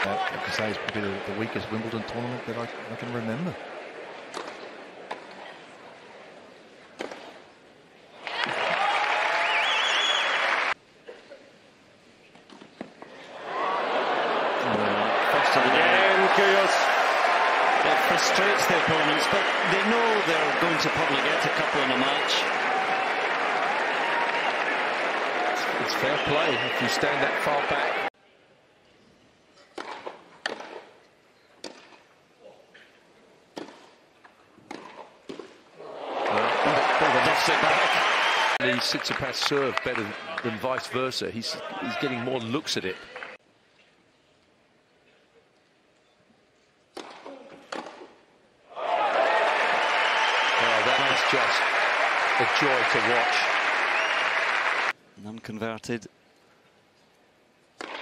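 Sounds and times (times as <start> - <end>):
tennis ball struck with rackets: 29.7 - 30.9, 31.6 - 32.0, 33.6 - 33.9, 34.6 - 35.6, 46.9 - 48.1, 57.8 - 58.0.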